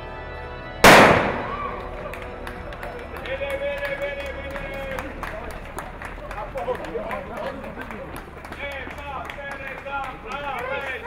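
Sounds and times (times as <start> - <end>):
starter pistol shot: 0.8 - 1.7.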